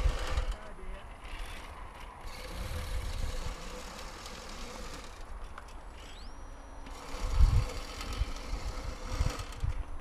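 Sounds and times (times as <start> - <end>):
wind buffeting microphone: 0.0 - 5.3, 6.9 - 10.0.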